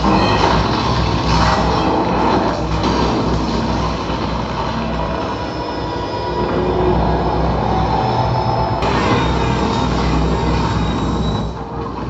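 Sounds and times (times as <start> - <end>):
heavy rumbling destruction: 0.0 - 12.0.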